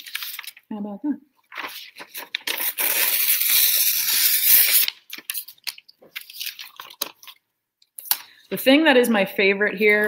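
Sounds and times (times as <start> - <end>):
paper rustling and crinkling: 0.0 - 0.6, 1.4 - 7.4
paper tearing: 1.5 - 7.4.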